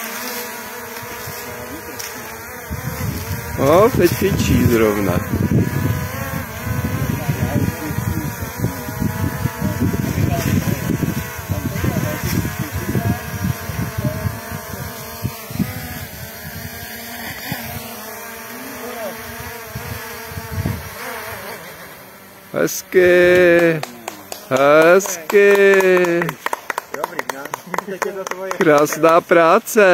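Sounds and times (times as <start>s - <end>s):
drone propellers buzzing: 0.0s - 26.8s
wind rumble on microphone: 2.6s - 17.8s, 19.4s - 21.0s.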